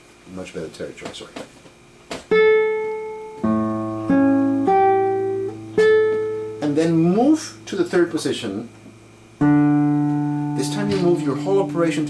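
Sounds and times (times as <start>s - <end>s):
classical guitar played slowly: 2.3s - 7.7s, 9.4s - 12.0s.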